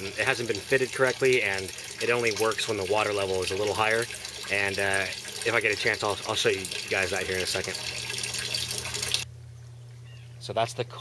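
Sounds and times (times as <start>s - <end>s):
water splashing into tank: 0.0s - 9.3s
low steady hum: 0.0s - 11.0s.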